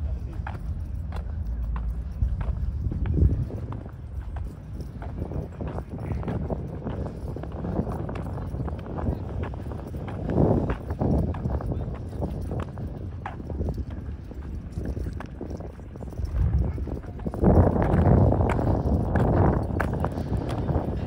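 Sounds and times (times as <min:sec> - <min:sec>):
footsteps on asphalt: 0:00.0 - 0:21.0
people talking: 0:00.0 - 0:21.0.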